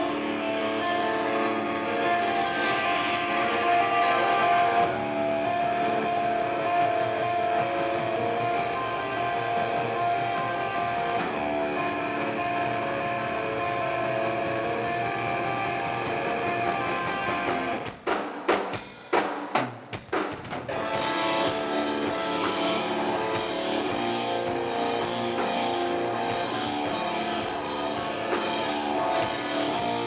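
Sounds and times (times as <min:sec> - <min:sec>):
electric guitars playing chords: 0:00.0 - 0:17.9, 0:20.7 - 0:30.0.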